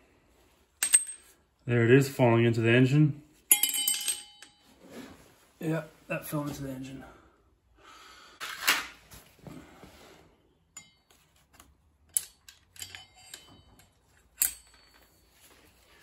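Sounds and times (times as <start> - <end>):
handling rustle: 12.8 - 16.0.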